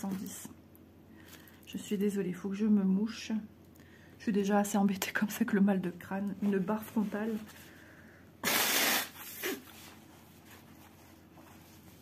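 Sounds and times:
person blowing nose: 8.4 - 9.9.

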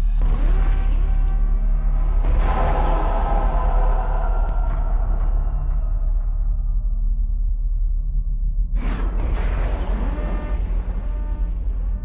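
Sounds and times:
deep low drone: 0.0 - 12.0.

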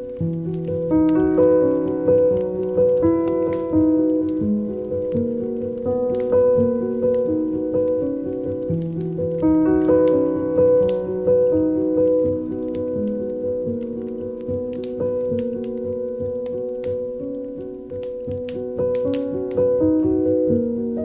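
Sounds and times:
rain-like crackles: 0.0 - 21.0
slow soft piano music: 0.0 - 21.0.

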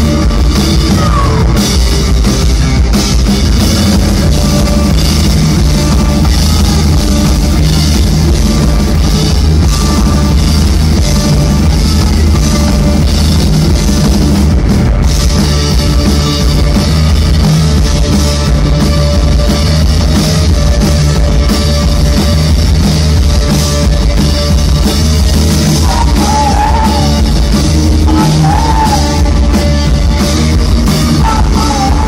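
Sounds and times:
drum kit: 0.0 - 32.0
electric bass: 0.0 - 32.0
electric guitar: 0.0 - 32.0.

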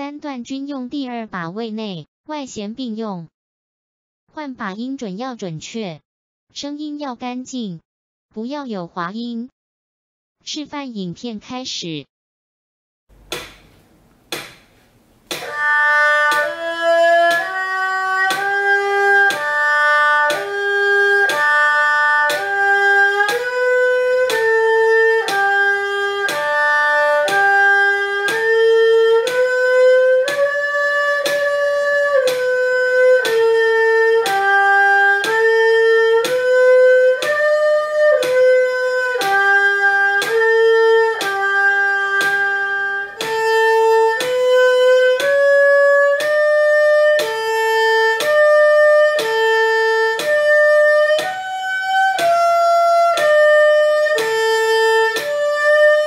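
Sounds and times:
erhu playing slow notes: 15.3 - 56.0.

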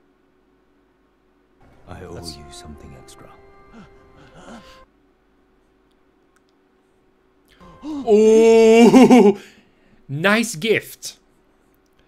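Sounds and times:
faint clicks: 5.8 - 6.6.

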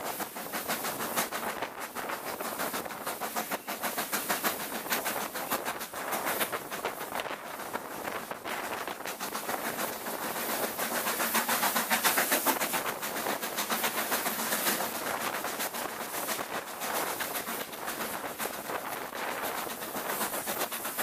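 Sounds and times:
steam locomotive exhaust beats: 0.0 - 21.0
train running noise: 0.0 - 21.0.

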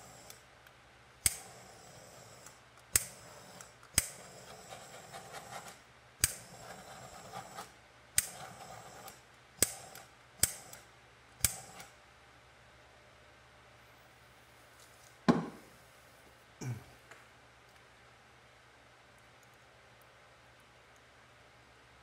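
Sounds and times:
torch flame hiss: 0.0 - 0.5, 1.2 - 12.0
torch ignition click: 0.0 - 4.7, 5.6 - 7.6, 8.2 - 12.0.

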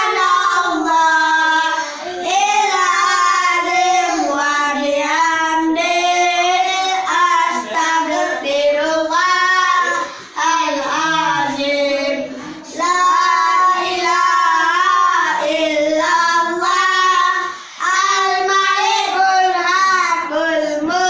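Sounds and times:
children singing devotional song: 0.0 - 21.0.

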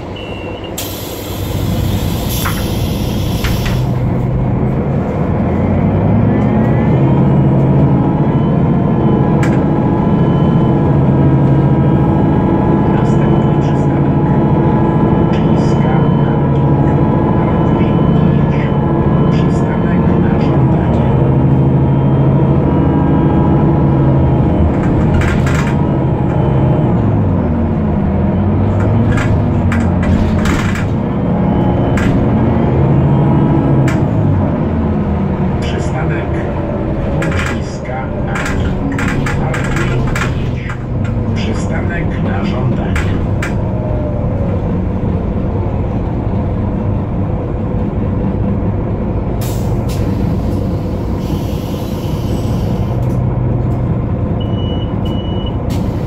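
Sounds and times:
bus diesel engine running: 0.0 - 56.0.

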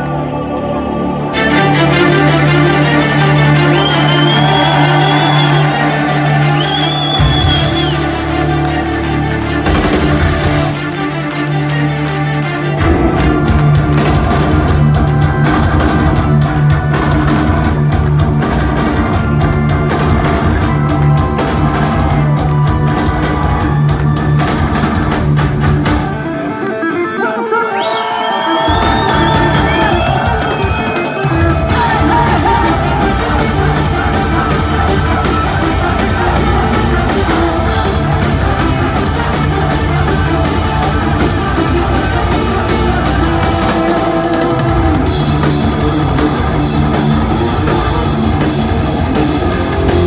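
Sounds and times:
crowd cheering: 0.0 - 26.6, 27.3 - 50.0
heavy metal band playing live: 1.4 - 50.0.

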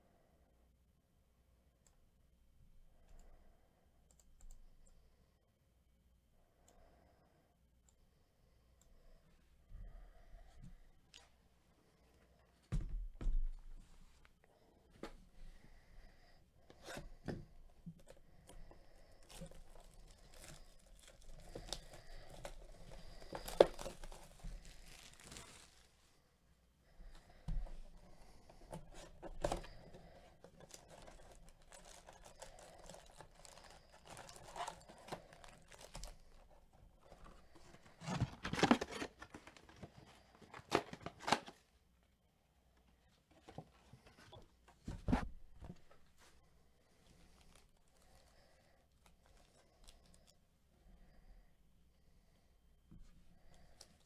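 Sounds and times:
foil packs rustling and crackling: 19.2 - 26.0, 28.7 - 41.6, 47.2 - 48.5
plastic shrink-wrap tearing: 23.3 - 25.9.

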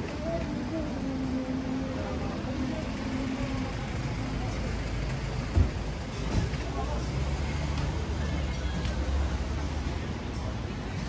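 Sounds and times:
indistinct voices: 0.0 - 11.0
vehicle engine running: 0.0 - 11.0.

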